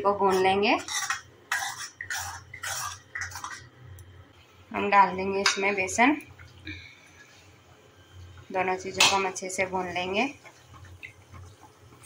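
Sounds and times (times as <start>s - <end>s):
low steady hum: 0.0s - 12.0s
ladle scraping iron pan: 0.3s - 3.7s.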